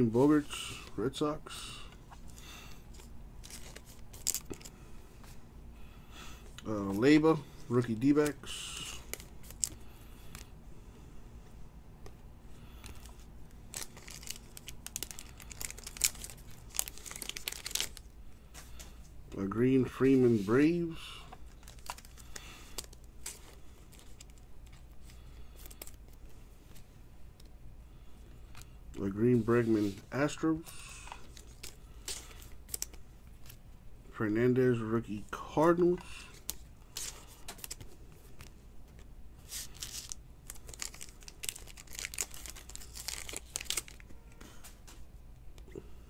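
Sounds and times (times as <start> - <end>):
trading cards crinkling and clicking: 1.9 - 4.8, 7.8 - 10.5, 12.8 - 19.1, 21.3 - 27.5, 30.7 - 33.6, 36.0 - 45.7.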